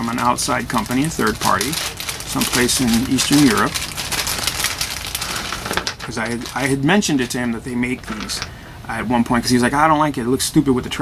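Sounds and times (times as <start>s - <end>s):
plastic bag crinkling: 0.0s - 8.5s.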